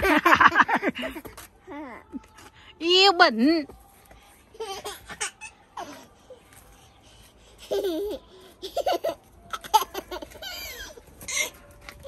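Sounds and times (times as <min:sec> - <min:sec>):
toddler laughing: 0:07.6 - 0:11.5.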